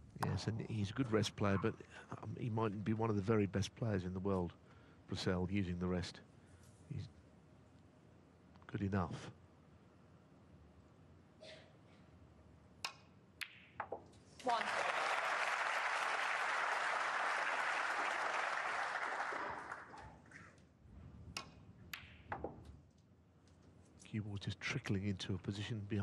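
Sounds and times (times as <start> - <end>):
crowd applauding: 14.4 - 20.2.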